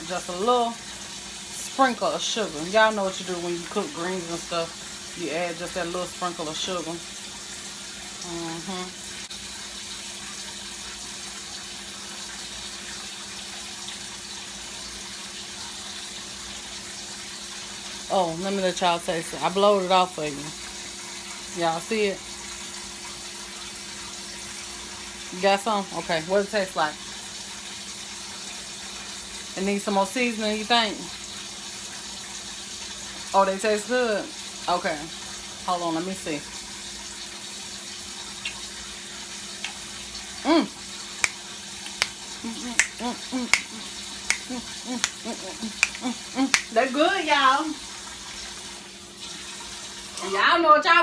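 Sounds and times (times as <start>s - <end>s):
pot simmering on stovetop: 0.0s - 51.0s.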